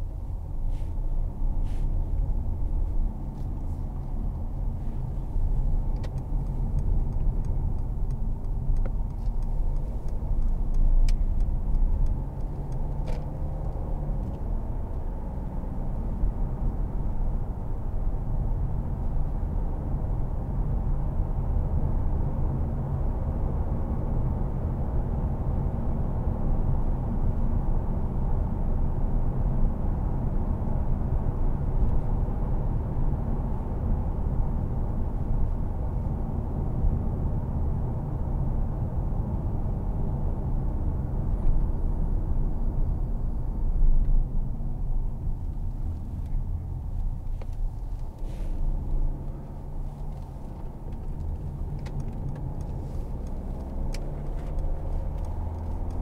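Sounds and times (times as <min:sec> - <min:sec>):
tyres on road: 0:00.0 - 0:27.2, 0:27.9 - 0:56.0
diesel engine rumble in car cabin: 0:00.0 - 0:56.0.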